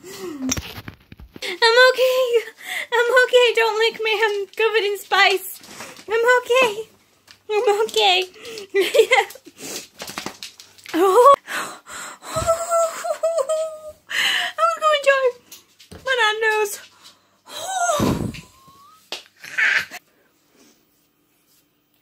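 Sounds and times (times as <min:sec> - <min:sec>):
woman squealing and laughing: 0:17.6 - 0:20.0.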